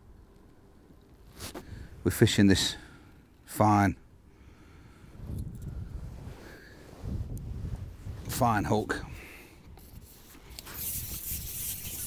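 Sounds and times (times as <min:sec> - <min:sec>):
fishing pole rubbing through hands: 0:01.3 - 0:01.6, 0:09.8 - 0:12.0.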